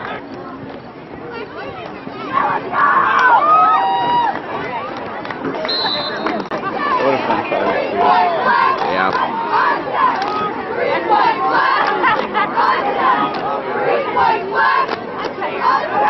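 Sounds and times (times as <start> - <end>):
crowd shouting and cheering: 1.3 - 16.0.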